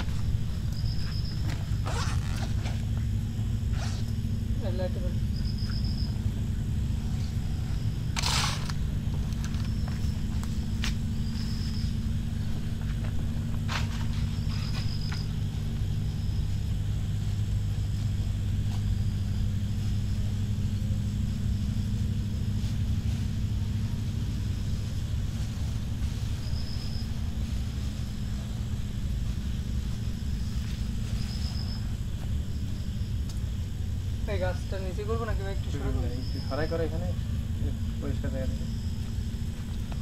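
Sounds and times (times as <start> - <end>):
faint high chirps: 0.0 - 2.5, 5.0 - 6.4
steady low hum: 0.0 - 40.0.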